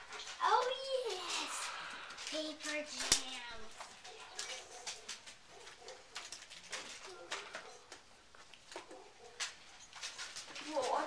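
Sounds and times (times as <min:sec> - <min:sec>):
packaging crinkling and rustling: 0:02.2 - 0:11.0.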